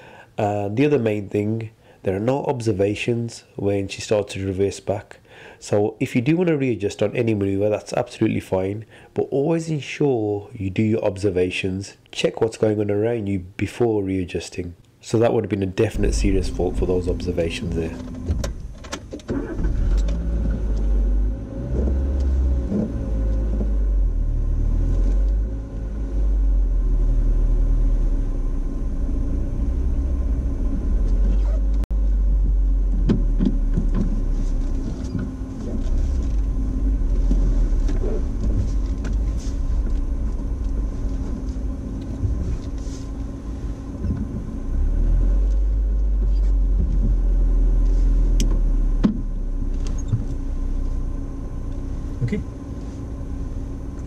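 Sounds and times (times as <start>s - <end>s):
car engine low rumble: 15.8s - 54.0s.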